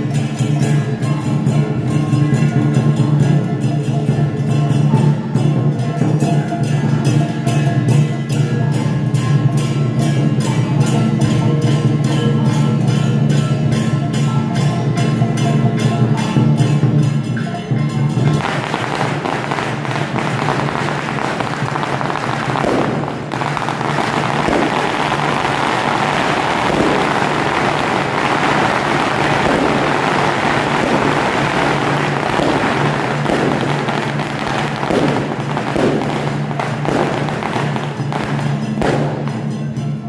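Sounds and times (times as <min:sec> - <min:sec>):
firecrackers crackling: 0:18.2 - 0:40.0.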